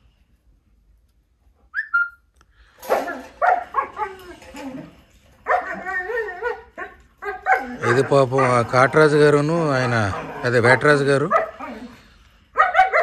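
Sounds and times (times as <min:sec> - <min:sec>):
dog barking and yelping: 0:02.8 - 0:13.0
dog whining: 0:02.9 - 0:13.0.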